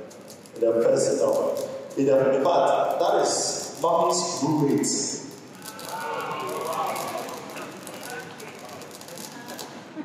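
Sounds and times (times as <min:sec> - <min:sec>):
steady hiss: 0:00.0 - 0:10.0
amplified speech: 0:00.6 - 0:08.6.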